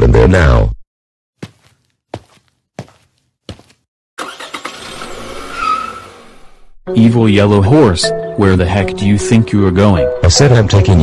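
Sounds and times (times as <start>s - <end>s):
car pulling away: 4.2s - 6.6s.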